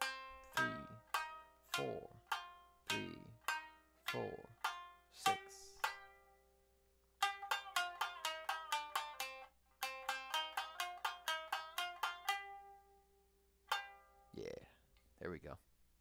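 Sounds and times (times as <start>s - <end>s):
shamisen rapid plucked notes: 0.0s - 6.6s, 7.2s - 13.1s, 13.7s - 14.3s.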